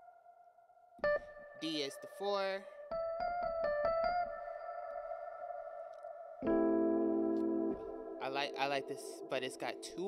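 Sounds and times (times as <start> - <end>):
reverb-drenched electric piano: 1.0 - 10.0.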